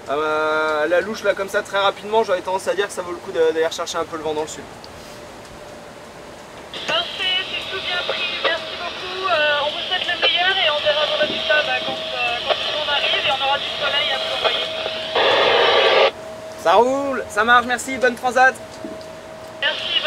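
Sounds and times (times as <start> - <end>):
radio static burst: 6.8 - 16.1, 19.6 - 20.0
voice over radio speaker: 6.8 - 16.1, 19.6 - 20.0.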